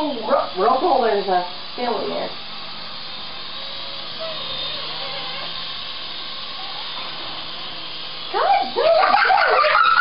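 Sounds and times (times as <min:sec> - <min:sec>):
toy helicopter whirring: 0:00.0 - 0:10.0.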